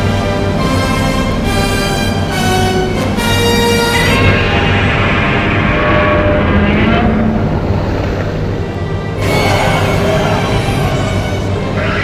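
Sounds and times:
loud engine-like rumble: 0.0 - 12.0.

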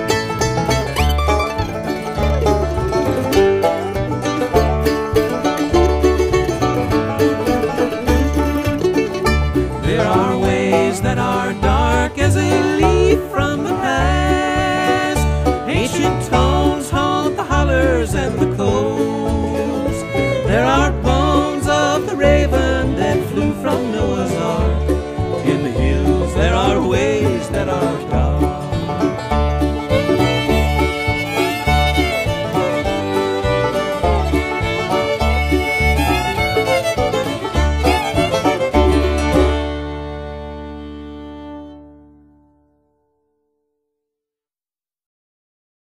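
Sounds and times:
pulsing bass: 0.0 - 42.4
banjo: 0.0 - 42.5
fiddle: 0.0 - 42.6
guitar: 0.0 - 43.1.

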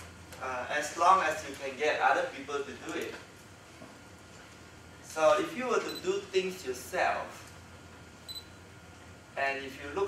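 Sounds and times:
man speaking in small room: 0.0 - 3.4, 5.0 - 7.7, 9.3 - 10.0.

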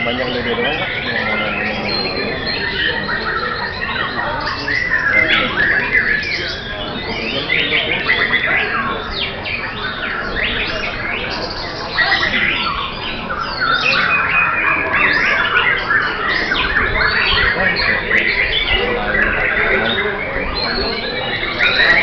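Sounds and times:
songbird singing and calling: 0.0 - 22.0.

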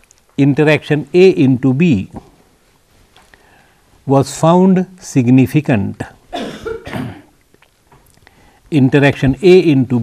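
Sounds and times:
man coughing: 6.3 - 7.3.

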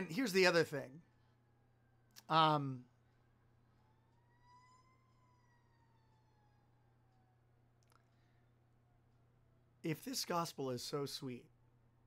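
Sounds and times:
faint wailing tone: 0.0 - 9.4.

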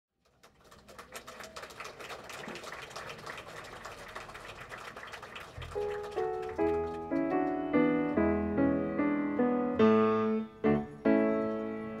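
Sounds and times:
piano playing: 5.6 - 12.0.

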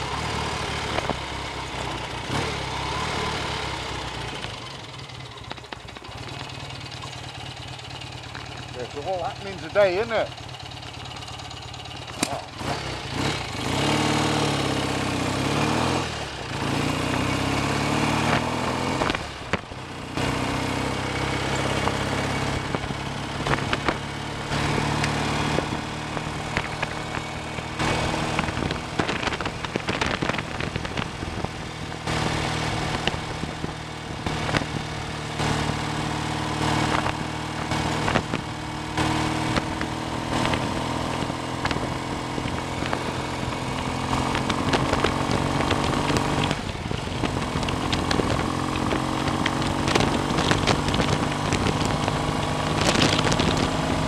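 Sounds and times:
motorcycle engine revving: 0.0 - 54.0
wind rush on microphone: 22.5 - 35.8, 39.2 - 54.0.

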